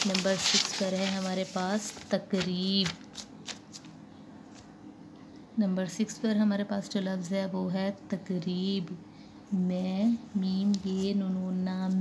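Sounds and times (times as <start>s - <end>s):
paper rustling on clipboard: 0.0s - 4.7s.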